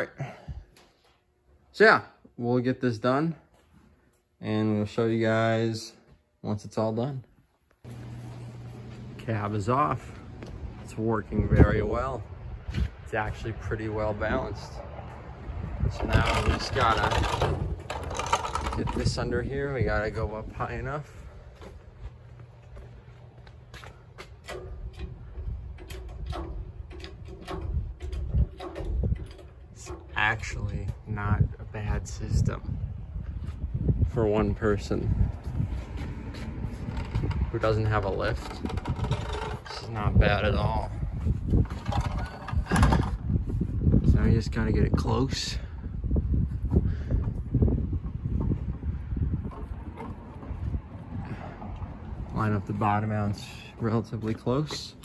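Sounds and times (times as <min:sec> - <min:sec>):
wooden cart rolling over asphalt: 0:15.8 - 0:20.2, 0:36.4 - 0:43.3, 0:47.9 - 0:52.8
cart knocking and clattering: 0:15.9 - 0:19.2
clicks and knocks: 0:24.2 - 0:30.2.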